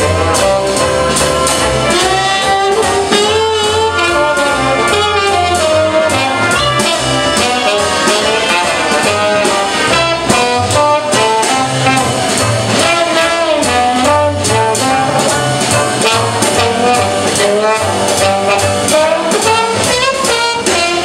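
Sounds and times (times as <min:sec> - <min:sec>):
jazz band playing: 0:00.0 - 0:21.0
trombone: 0:00.0 - 0:21.0.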